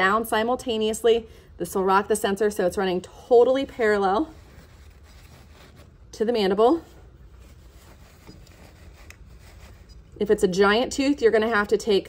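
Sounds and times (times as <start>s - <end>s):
faint handling sounds: 3.6s - 10.4s.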